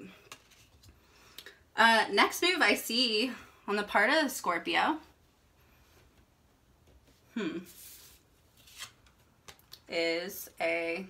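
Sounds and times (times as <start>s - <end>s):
card sliding rustle: 7.7s - 9.2s.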